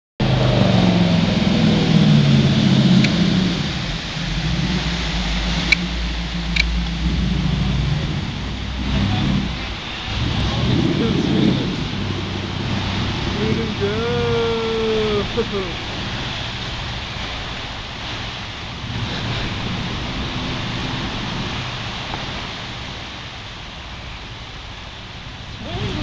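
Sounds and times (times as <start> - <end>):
boat engine rumble: 0.2 - 26.0
churning water: 0.2 - 26.0
wind noise: 0.2 - 26.0.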